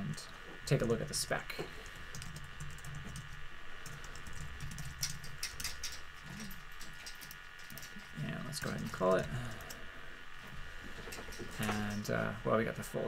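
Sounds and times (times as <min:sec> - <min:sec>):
typing on computer keyboard: 0:02.1 - 0:09.8.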